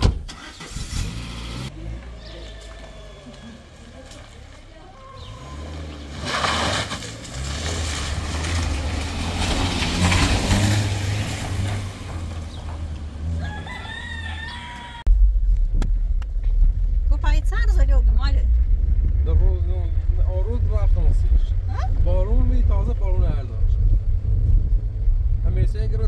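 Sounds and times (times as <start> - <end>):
car engine and tyres on gravel: 0.0 - 26.0
deep engine and road rumble: 0.0 - 26.0
rooster crowing: 2.4 - 3.8, 13.3 - 15.1
voice: 17.1 - 18.5, 19.2 - 23.7, 25.4 - 26.0.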